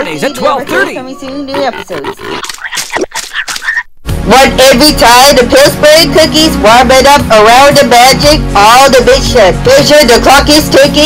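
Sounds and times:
cartoon squeaks: 0:00.7 - 0:03.9.

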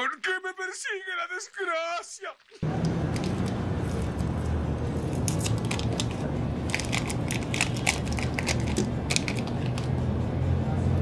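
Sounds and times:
plastic film crinkling: 0:02.4 - 0:09.9.

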